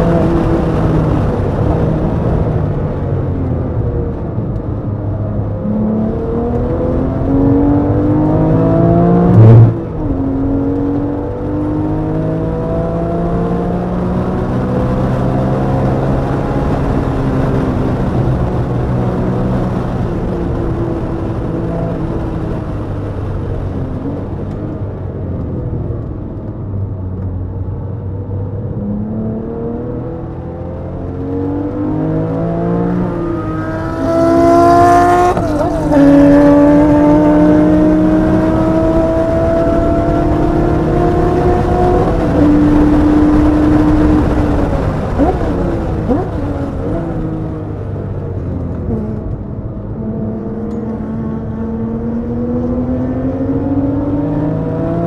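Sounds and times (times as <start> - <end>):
car engine revving through gears: 0.0 - 2.8, 5.4 - 24.7, 28.4 - 55.0.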